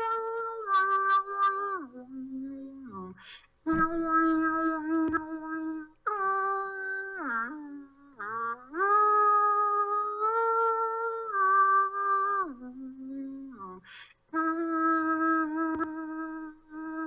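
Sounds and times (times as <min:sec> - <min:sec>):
person humming long notes: 0:00.0 - 0:17.0.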